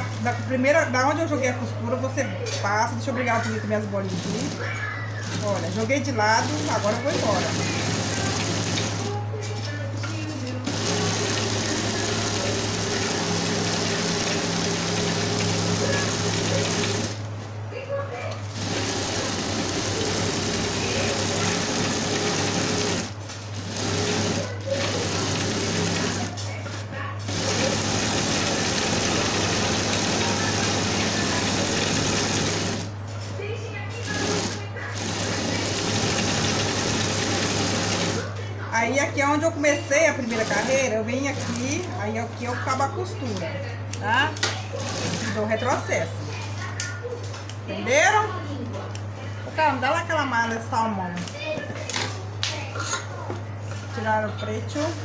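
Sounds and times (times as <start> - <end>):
steady motor hum: 0.0 - 55.0
sewing machine stitching: 4.0 - 9.2, 10.6 - 17.2, 18.4 - 26.4, 27.3 - 33.0, 34.0 - 38.3, 40.2 - 41.9, 44.8 - 45.4.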